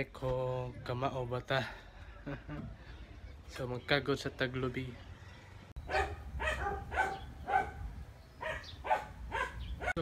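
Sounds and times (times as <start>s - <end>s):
dog barking: 5.9s - 10.0s.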